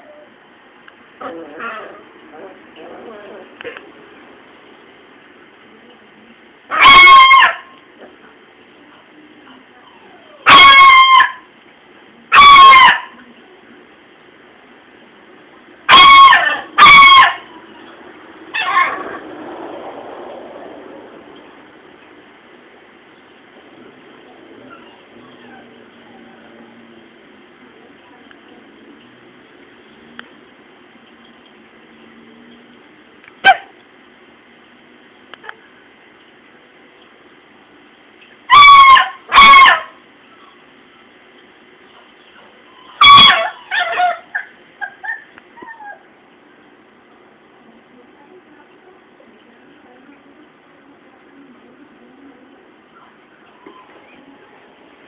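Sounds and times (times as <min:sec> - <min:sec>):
dog barking: 0:06.7 - 0:07.7, 0:10.4 - 0:11.5, 0:12.3 - 0:13.2, 0:15.9 - 0:17.5, 0:33.4 - 0:33.7, 0:38.5 - 0:40.0, 0:43.0 - 0:44.5
dog crying high-pitched: 0:42.8 - 0:46.0.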